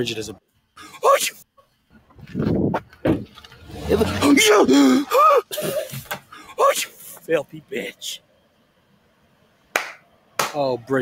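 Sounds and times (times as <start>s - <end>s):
sharp click or smack: 9.8s - 10.6s.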